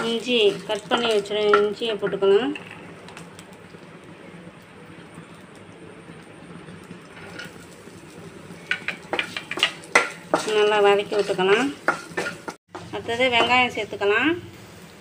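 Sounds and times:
spatula scraping and tapping pan: 0:00.0 - 0:02.9, 0:08.6 - 0:13.6
oil sizzling in a pan: 0:00.0 - 0:15.0.

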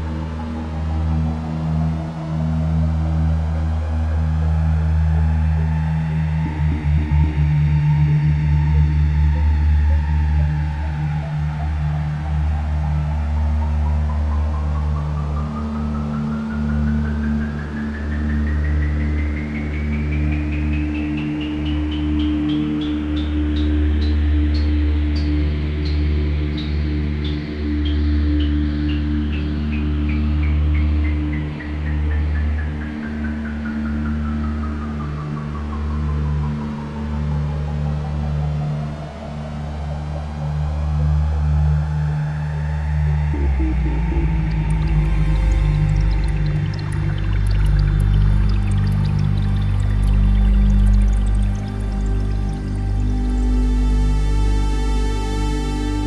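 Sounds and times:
low synthesizer drones: 0:00.0 - 0:56.0
soft gliding synth tone: 0:43.0 - 0:56.0
pulsing tone sweeping in pitch: 0:43.2 - 0:56.0.

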